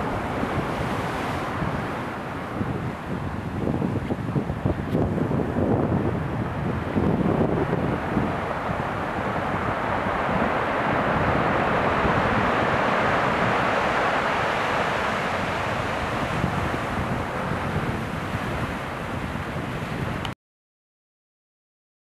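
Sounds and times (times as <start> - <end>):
wind buffeting microphone: 0.0 - 20.3
surf on cobble shore: 0.0 - 20.4.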